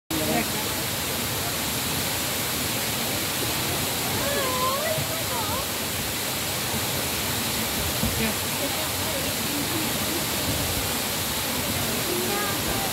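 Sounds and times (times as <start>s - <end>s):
waterfall rushing: 0.1s - 12.9s.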